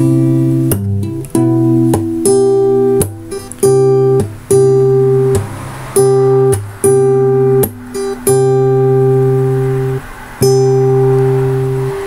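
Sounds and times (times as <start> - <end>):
classical guitar chord ringing: 0.0 - 12.0.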